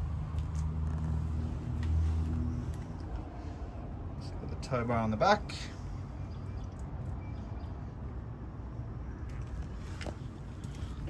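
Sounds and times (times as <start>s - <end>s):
low outdoor background rumble: 0.0s - 11.0s.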